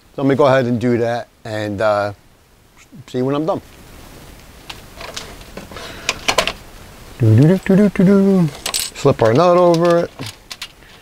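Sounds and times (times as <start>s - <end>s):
man speaking: 0.2s - 2.2s, 2.8s - 3.7s, 7.2s - 10.3s.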